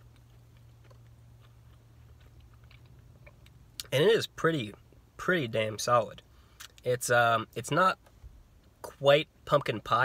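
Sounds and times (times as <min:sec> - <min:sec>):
chewing mouth clicks: 0:00.0 - 0:03.9
steady low hum: 0:00.0 - 0:10.0.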